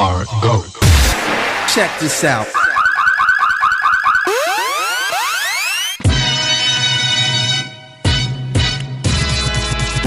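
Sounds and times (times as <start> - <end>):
rising synth sweeps: 0.9 - 6.1
fast repeating electronic warble: 1.3 - 6.0.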